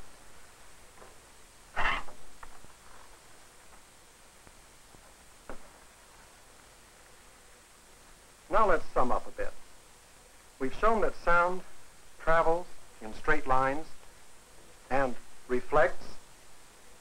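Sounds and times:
faint steady hiss: 0:00.0 - 0:17.0
faint knock: 0:05.5 - 0:05.7.

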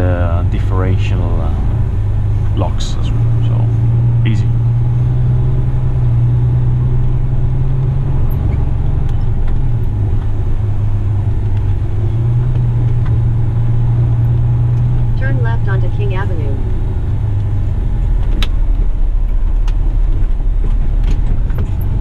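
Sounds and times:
diesel truck engine drone: 0:00.0 - 0:22.0.

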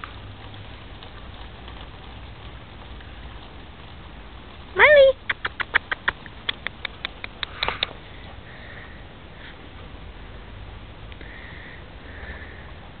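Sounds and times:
sharp clicks: 0:05.2 - 0:08.0.

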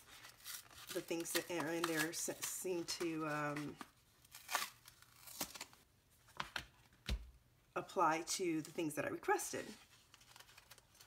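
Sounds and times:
packaging crinkling and tearing: 0:00.0 - 0:05.8, 0:10.0 - 0:11.0.

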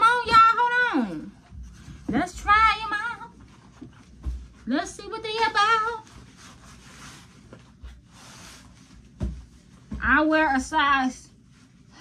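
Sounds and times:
soft rustling of clothing: 0:00.1 - 0:12.0.

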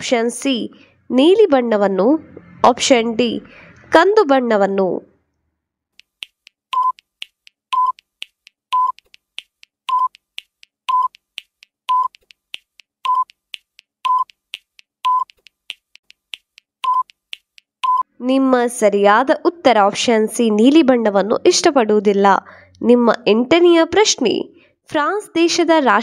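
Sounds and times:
countdown timer beeps: 0:06.7 - 0:07.1, 0:07.7 - 0:08.1, 0:08.7 - 0:09.1, 0:09.9 - 0:10.2, 0:10.9 - 0:11.2, 0:11.9 - 0:12.2, 0:13.0 - 0:13.4, 0:14.0 - 0:14.4, 0:15.0 - 0:15.4, 0:16.8 - 0:17.2, 0:17.8 - 0:18.0.

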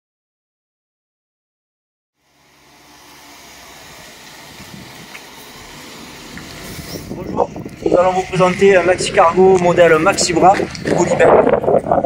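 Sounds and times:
outdoor low rumble: 0:02.2 - 0:12.0.

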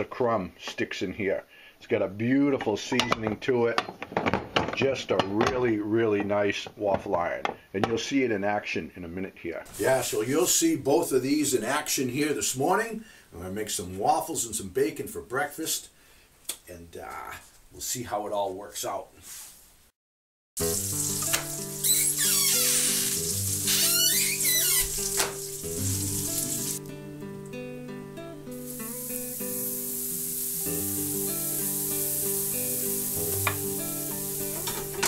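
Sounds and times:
batter sizzling in waffle iron: 0:20.6 - 0:26.8, 0:28.5 - 0:35.0
background music: 0:20.6 - 0:35.0.

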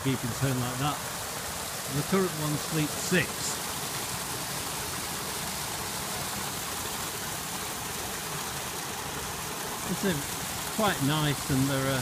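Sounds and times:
waterfall splashing into pond: 0:00.0 - 0:12.0.

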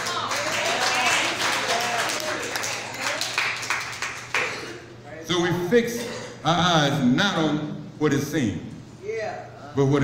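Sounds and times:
people clapping: 0:00.0 - 0:04.8.

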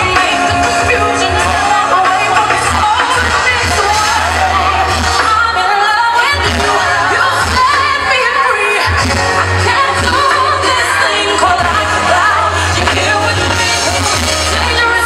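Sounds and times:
person singing: 0:00.0 - 0:15.0
pop backing track with deep bass: 0:00.0 - 0:15.0.

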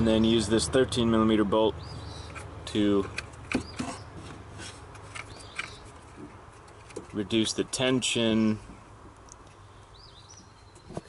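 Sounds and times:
hand rubbing engine parts: 0:02.1 - 0:08.9.

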